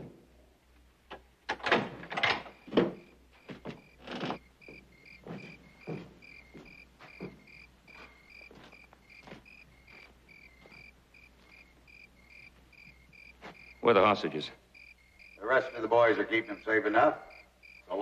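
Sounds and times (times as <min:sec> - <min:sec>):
crickets chirping: 0:02.0 - 0:18.0
booted footsteps on wooden boards: 0:02.5 - 0:13.8.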